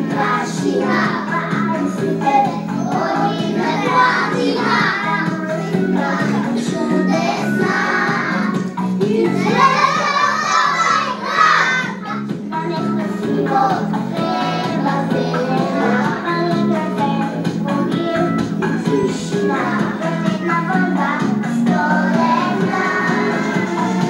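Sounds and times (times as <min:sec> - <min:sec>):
children singing in unison: 0:00.0 - 0:24.0
recorded backing music: 0:00.0 - 0:24.0.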